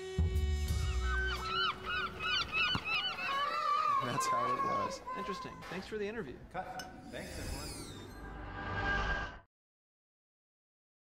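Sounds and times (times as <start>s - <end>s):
birds calling: 0.7s - 8.2s.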